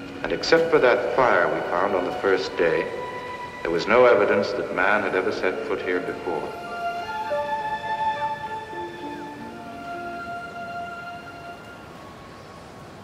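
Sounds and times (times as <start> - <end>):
film music with held notes: 0.0 - 13.0.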